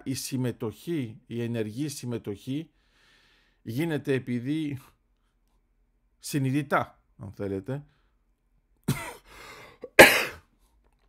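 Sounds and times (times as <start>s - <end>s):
man coughing: 8.8s - 10.5s.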